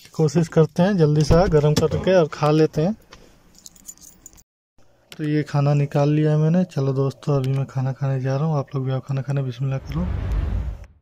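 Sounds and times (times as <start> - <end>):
keys jingling: 3.5 - 4.4.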